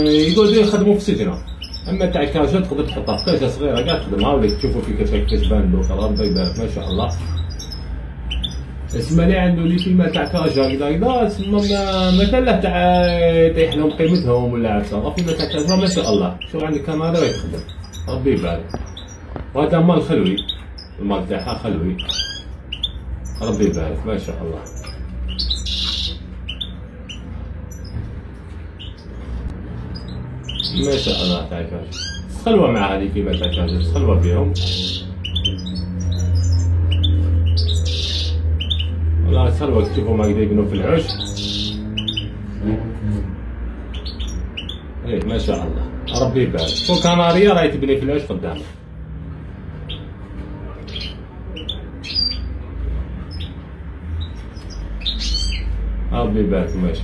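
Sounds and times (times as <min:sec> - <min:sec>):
goldfinches chirping: 0:00.0 - 0:42.6, 0:43.6 - 0:47.7, 0:50.9 - 0:52.6, 0:53.2 - 0:57.0.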